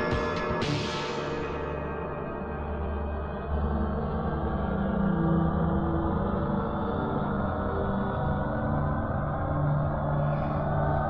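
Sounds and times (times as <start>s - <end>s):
low droning film score: 0.0s - 11.0s.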